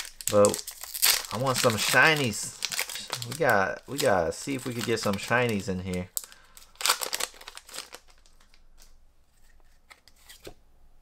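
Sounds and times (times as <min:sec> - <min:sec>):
foil wrapper crinkling and tearing: 0:00.0 - 0:08.9
cards rustling: 0:00.0 - 0:10.6.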